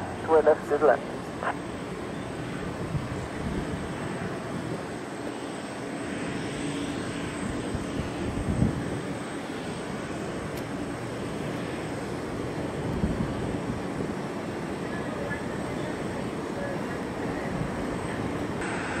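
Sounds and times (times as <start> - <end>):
jet engines rumbling: 0.0 - 19.0.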